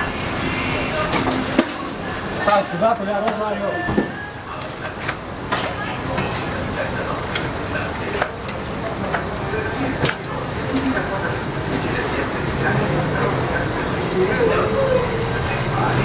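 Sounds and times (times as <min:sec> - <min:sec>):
dough sizzling in hot oil: 0:00.0 - 0:16.0.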